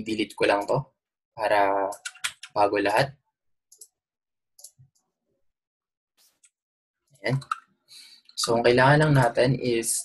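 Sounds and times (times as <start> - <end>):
computer mouse and keyboard clicks: 1.8 - 2.6, 3.7 - 4.0, 4.6 - 5.1, 7.3 - 7.7.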